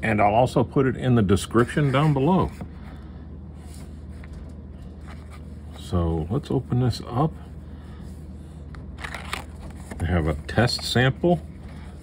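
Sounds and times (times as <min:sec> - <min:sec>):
paper card rustling and scraping: 0:01.5 - 0:03.0, 0:03.6 - 0:05.9, 0:08.2 - 0:12.0.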